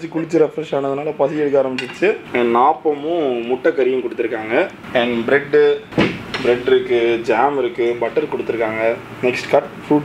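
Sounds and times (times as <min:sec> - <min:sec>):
person talking: 0:00.0 - 0:10.0
sharp knock: 0:05.9 - 0:06.5.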